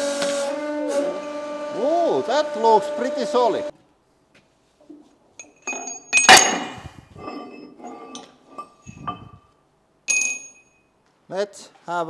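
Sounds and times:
loud ringing metal clank: 5.4s - 9.4s, 10.1s - 10.8s
steel knocks and clinks: 5.4s - 9.4s, 10.1s - 10.9s.

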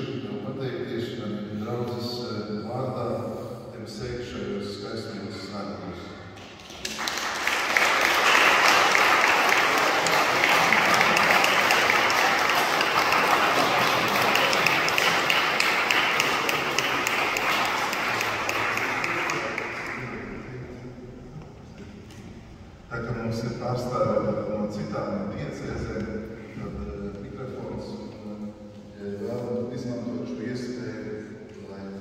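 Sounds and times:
congregation applauding: 6.4s - 20.6s.

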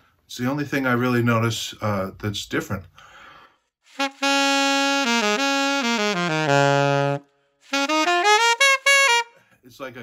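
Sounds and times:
saxophone playing: 3.9s - 9.4s.

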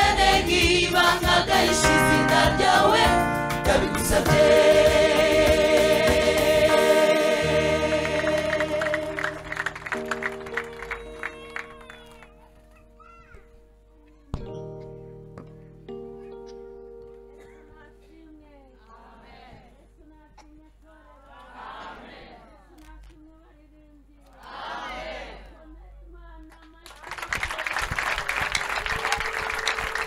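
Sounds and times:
gospel choir singing: 0.0s - 10.2s, 18.9s - 19.8s, 21.3s - 22.6s, 24.4s - 25.5s
instrumental accompaniment: 0.0s - 18.6s.

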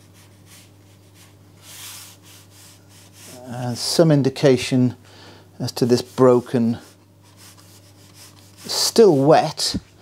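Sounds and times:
paintbrush scratching on paper: 5.8s - 9.6s.

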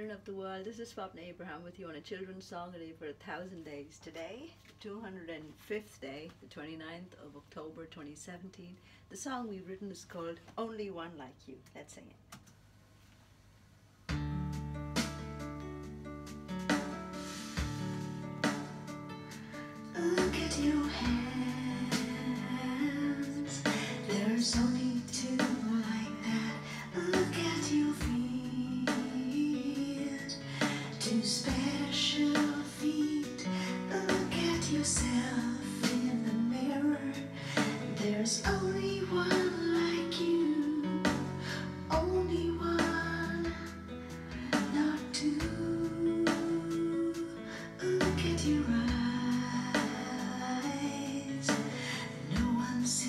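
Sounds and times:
woman singing children's song: 0.0s - 12.1s, 19.9s - 53.0s
backing track with guitar and beat: 14.1s - 53.0s.

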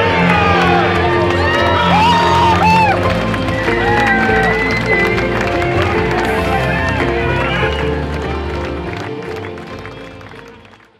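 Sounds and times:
background music: 0.0s - 10.9s.

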